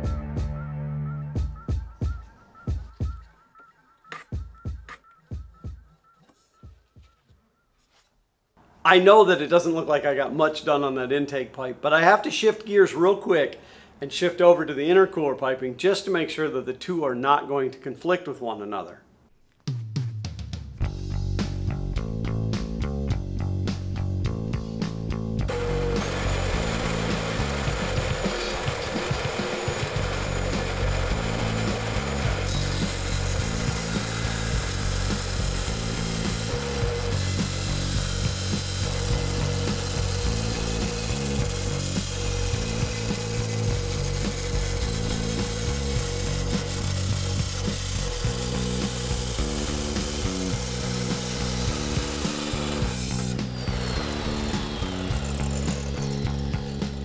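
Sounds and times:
music with bass line: 0.0s - 3.5s, 4.1s - 6.0s, 19.7s - 57.0s
cut-off saw grinding metal: 25.5s - 57.0s.

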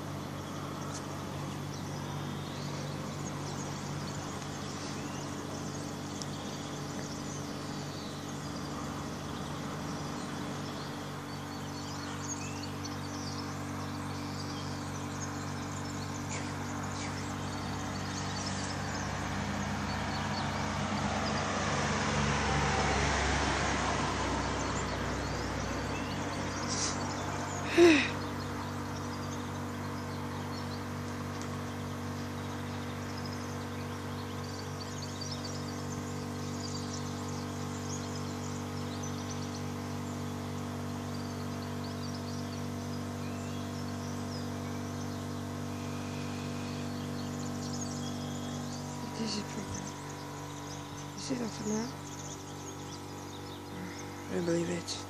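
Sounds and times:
faint bird chirps: 0.0s - 21.4s, 24.6s - 55.0s
steady low hum: 0.0s - 55.0s
car tyres passing: 18.0s - 27.5s
person sighing: 27.6s - 28.2s.

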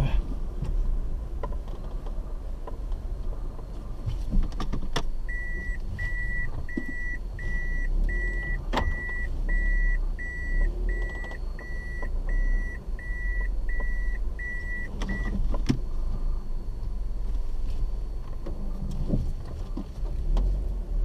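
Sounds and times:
car rolling on dirt road: 0.0s - 21.0s
car warning beeper: 5.2s - 15.4s.

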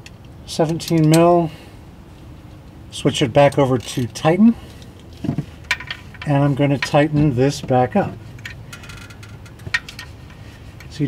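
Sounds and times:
socket ratchet clicking: 8.4s - 10.1s.

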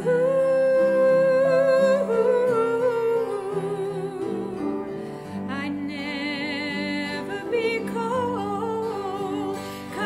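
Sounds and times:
instrumental accompaniment: 0.0s - 10.0s
person singing a love song: 0.0s - 10.0s.

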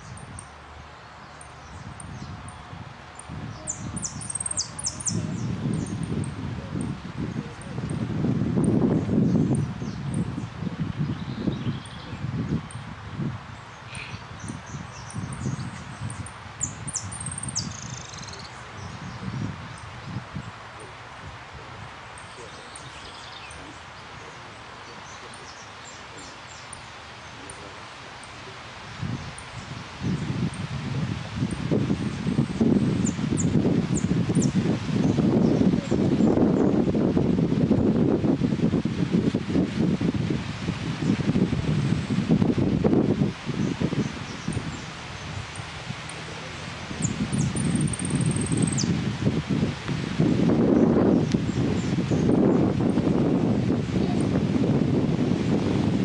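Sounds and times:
wind buffeting microphone: 0.0s - 25.8s, 28.8s - 56.0s
leaves rustling: 0.0s - 56.0s
faint high bird chirps: 47.0s - 48.9s.

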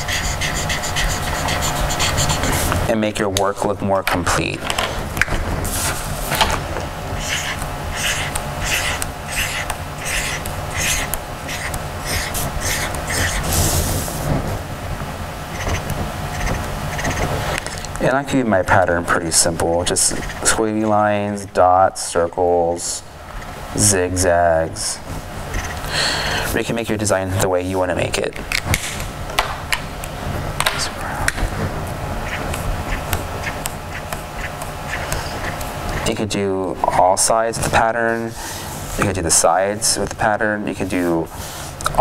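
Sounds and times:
felt-tip marker scratching on paper: 0.0s - 2.7s, 7.2s - 13.9s, 15.5s - 17.3s
steady low hum: 0.0s - 42.0s.

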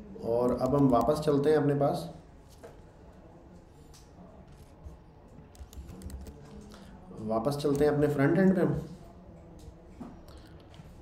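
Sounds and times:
faint keyboard clicks: 3.5s - 8.1s, 9.3s - 11.0s.

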